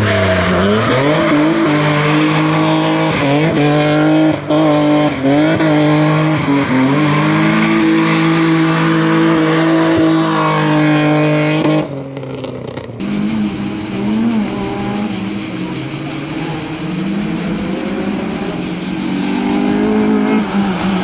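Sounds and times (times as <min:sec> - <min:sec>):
rally car engine revving: 0:00.0 - 0:21.0.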